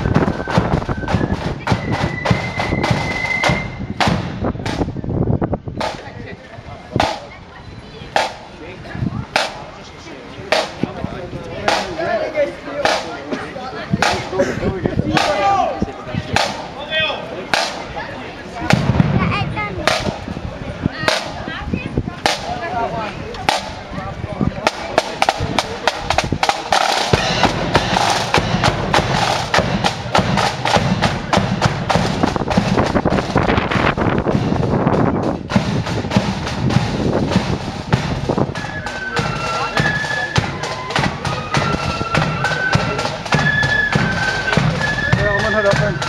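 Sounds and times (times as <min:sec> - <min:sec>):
fast drum cadence: 0:09.3 - 0:09.8, 0:11.6 - 0:12.2, 0:12.8 - 0:14.4, 0:15.1 - 0:15.7, 0:16.3 - 0:16.9, 0:18.6 - 0:20.3, 0:24.6 - 0:46.0
drum beat tapping: 0:11.6 - 0:12.1, 0:15.1 - 0:15.6, 0:24.6 - 0:46.0.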